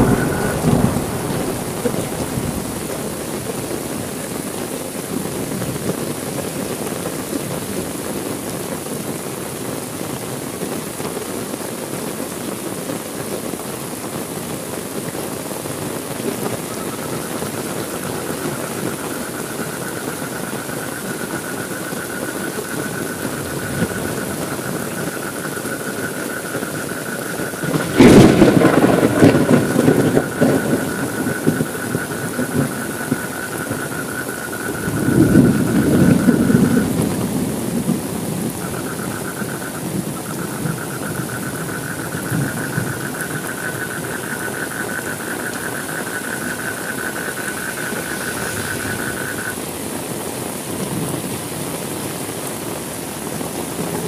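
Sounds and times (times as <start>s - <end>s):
thunder rumbling: 0.0s - 7.7s, 16.4s - 49.9s
heavy rain: 0.0s - 54.0s.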